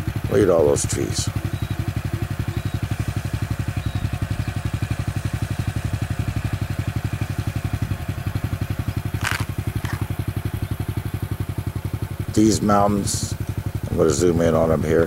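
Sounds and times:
motorcycle engine idling: 0.0s - 15.0s.

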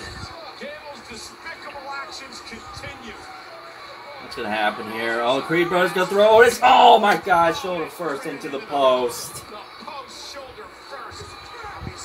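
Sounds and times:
commentator talking: 4.3s - 9.4s.

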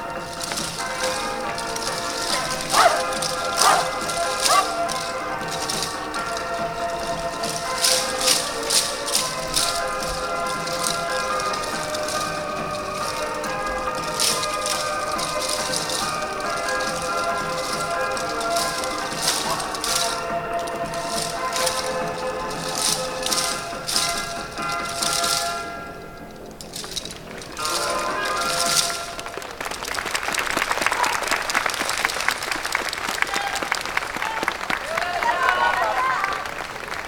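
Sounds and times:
wooden clappers clacking: 0.0s - 37.0s.

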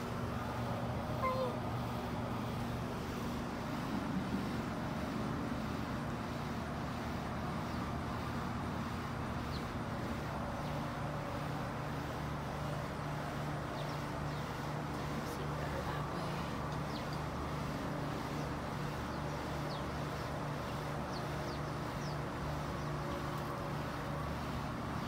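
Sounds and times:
low background hum: 0.0s - 25.0s
cat meowing: 1.2s - 1.6s.

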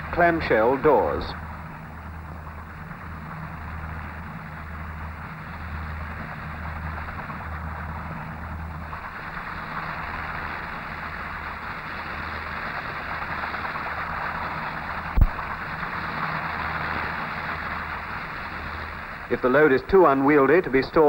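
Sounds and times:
low hum: 0.0s - 21.0s
rotor aircraft rushing roar: 0.0s - 21.0s.

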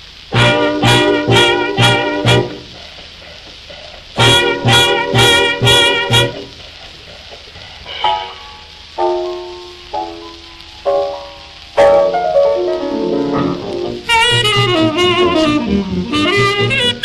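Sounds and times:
record surface hiss: 0.0s - 17.0s
swing band punched chords: 0.3s - 17.0s.

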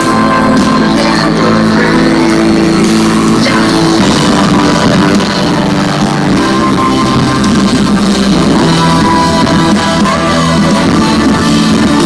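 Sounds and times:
drums: 0.0s - 12.0s
guitar: 0.0s - 12.0s
live rock band playing: 0.0s - 12.0s.

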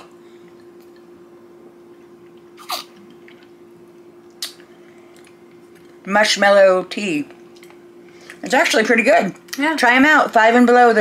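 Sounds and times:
sipping through straws: 2.6s - 3.0s.

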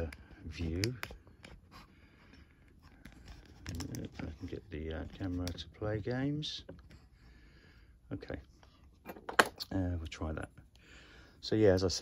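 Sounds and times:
man speaking: 8.1s - 8.5s, 11.4s - 12.0s.

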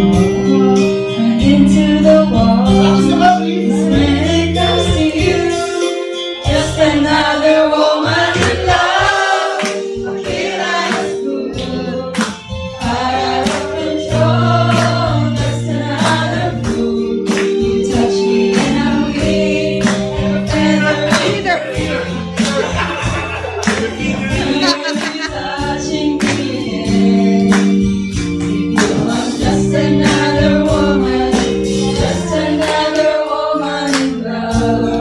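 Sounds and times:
women singing a long note: 0.7s - 12.2s, 12.8s - 22.1s, 23.9s - 27.6s, 28.9s - 35.0s.

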